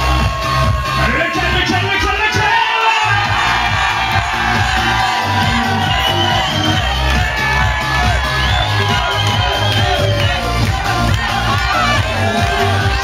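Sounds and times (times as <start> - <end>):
club dance music: 0.0 - 13.0
crowd shouting and cheering: 0.0 - 13.0.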